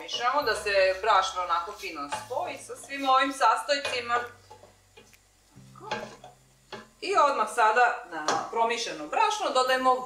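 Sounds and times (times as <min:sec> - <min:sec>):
wooden spoon scraping a steel pot: 0:00.0 - 0:05.1
faint knocks: 0:03.7 - 0:07.0.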